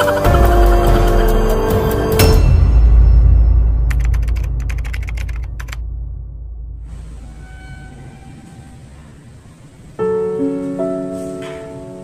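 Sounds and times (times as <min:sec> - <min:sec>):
low rumble: 0:00.4 - 0:09.1.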